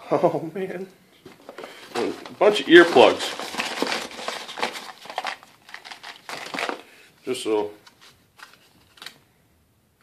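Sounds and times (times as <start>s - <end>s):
packet rustling in fingers: 1.4s - 6.9s.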